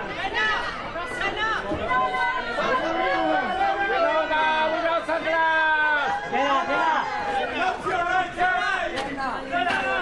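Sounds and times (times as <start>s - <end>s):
crowd calling and shouting: 0.0s - 10.0s.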